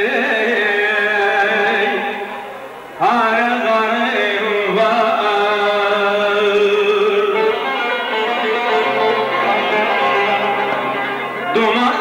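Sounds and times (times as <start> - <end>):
plucked long-necked lute folk music: 6.6 - 12.0.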